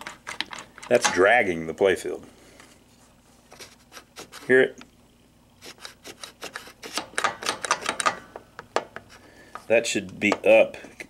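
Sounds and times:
pinball flipper scraping and clicking: 5.7 - 8.2.

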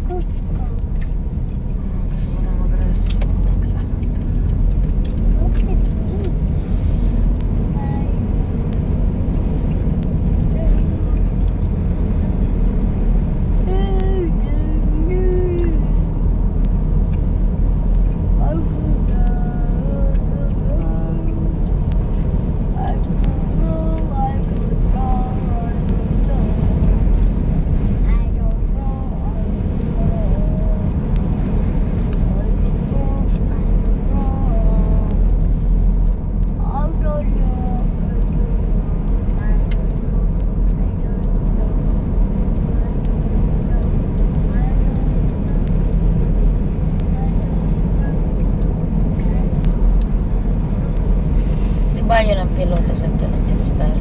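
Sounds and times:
car cabin road noise: 0.0 - 54.0.

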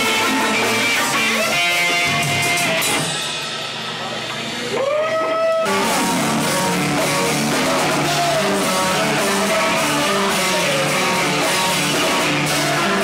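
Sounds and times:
live rock band playing loud: 0.0 - 13.0.

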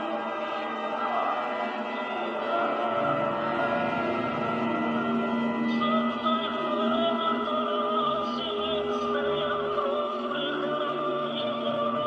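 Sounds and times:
choir-like voices holding notes: 0.0 - 12.0.

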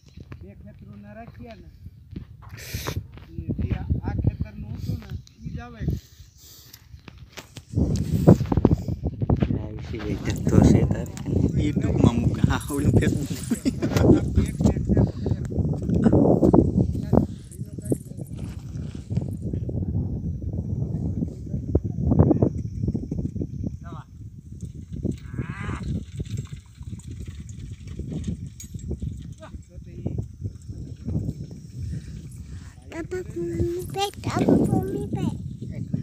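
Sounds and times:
people talking: 3.2 - 6.0, 9.5 - 15.4, 17.0 - 18.5, 32.8 - 36.0.

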